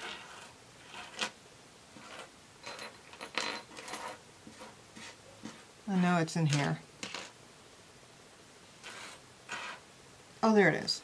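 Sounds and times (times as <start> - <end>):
metal jewelry clinking: 2.0 - 4.8.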